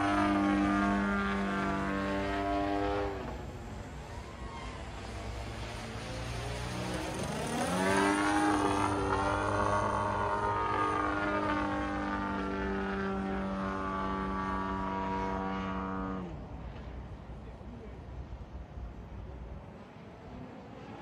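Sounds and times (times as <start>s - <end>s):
model airplane motor and propeller: 0.0s - 21.0s.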